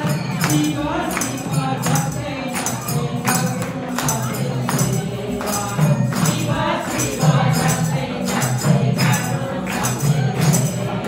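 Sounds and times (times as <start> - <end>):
group singing devotional song: 0.0 - 11.0
jingling hand percussion: 0.0 - 11.0.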